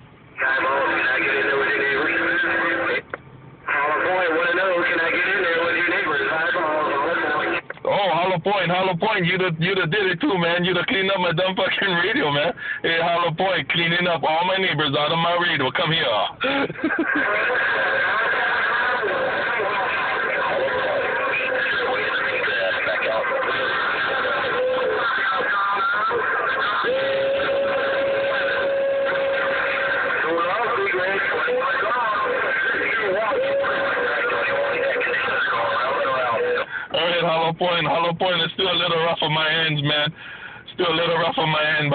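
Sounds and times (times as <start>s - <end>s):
steady radio tone: 0.0s - 41.9s
garbled radio speech: 0.4s - 41.9s.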